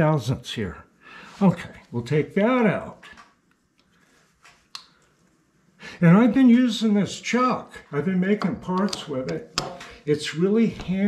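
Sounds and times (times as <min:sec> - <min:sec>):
person inhaling: 0:01.0 - 0:01.4, 0:05.8 - 0:06.0, 0:09.7 - 0:10.1.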